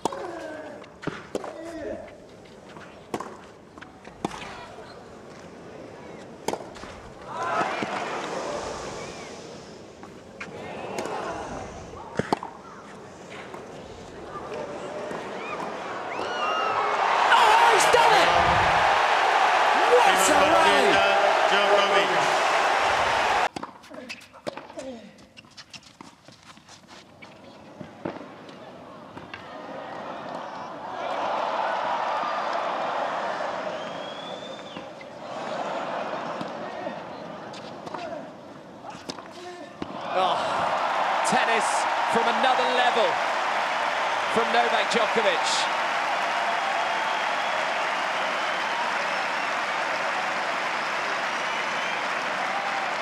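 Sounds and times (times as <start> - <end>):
crowd cheering: 7.2 - 9.6, 14.2 - 23.5, 29.4 - 37.6, 39.8 - 53.0.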